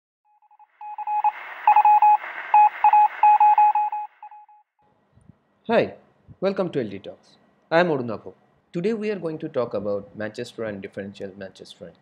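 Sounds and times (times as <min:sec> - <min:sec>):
morse code beeps: 0:00.4 - 0:04.6.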